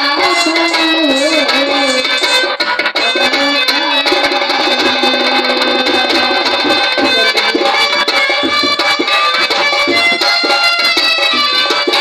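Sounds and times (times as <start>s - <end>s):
keyboard backing: 0.0s - 12.0s
reedy wind instrument melody: 0.0s - 12.0s
steady drum beat: 0.0s - 12.0s.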